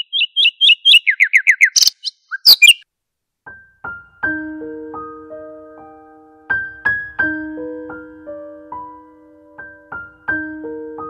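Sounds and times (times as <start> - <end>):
bird chirping: 0.0 - 2.8
piano notes: 3.8 - 11.0.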